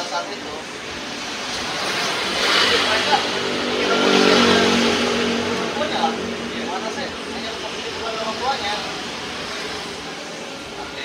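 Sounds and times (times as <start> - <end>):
vehicle engine passing: 0.4 - 11.0.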